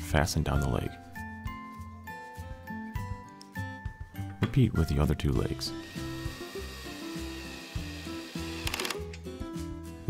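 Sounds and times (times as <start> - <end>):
background music: 0.0 - 10.0
power drill whining: 5.8 - 9.1.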